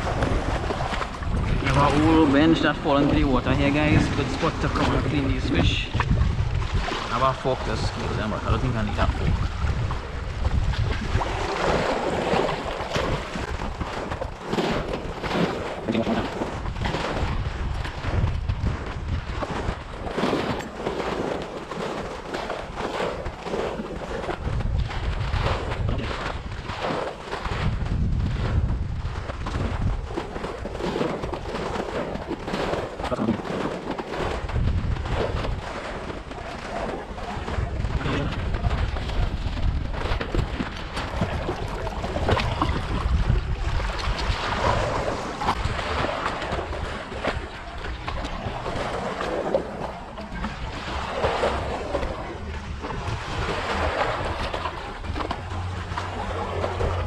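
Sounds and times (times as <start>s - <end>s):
small waves splashing against wall: 0.0s - 57.0s
wind rumbling on microphone: 0.0s - 57.0s.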